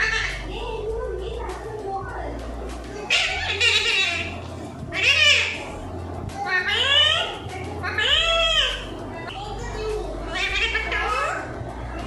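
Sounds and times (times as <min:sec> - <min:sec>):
parakeet squawks: 0:00.0 - 0:00.5, 0:03.1 - 0:05.8, 0:06.5 - 0:08.9, 0:10.3 - 0:11.5
parakeet raspy call: 0:03.1 - 0:05.7, 0:10.3 - 0:11.4.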